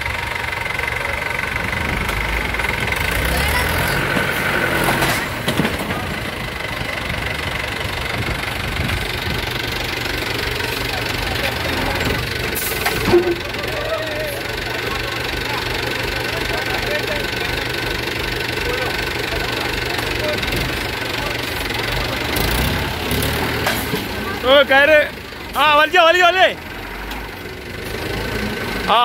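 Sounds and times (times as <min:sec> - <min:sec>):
tractor diesel engine running: 0:00.0 - 0:29.0.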